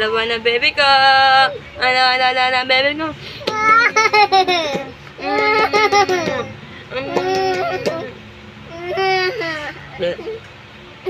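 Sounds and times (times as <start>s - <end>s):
child laughing: 3.5s - 10.4s.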